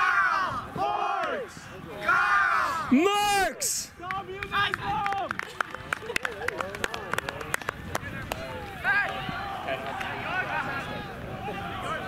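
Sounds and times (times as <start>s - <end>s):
players shouting: 0.0s - 5.3s, 8.2s - 12.0s.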